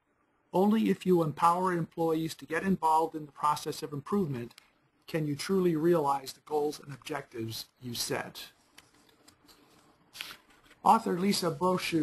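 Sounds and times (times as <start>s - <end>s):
person speaking: 0.5s - 12.0s
soft rustle: 8.4s - 12.0s.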